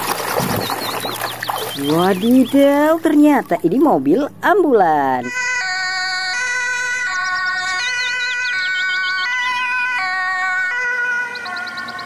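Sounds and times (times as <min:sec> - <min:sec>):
water splashing in a plastic tub: 0:00.0 - 0:03.7
small bird chirping: 0:00.4 - 0:03.0.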